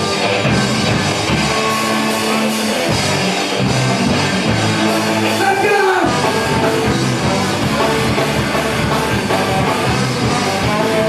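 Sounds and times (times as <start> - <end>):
electric guitars: 0.0 - 11.0
drum beat: 2.8 - 11.0.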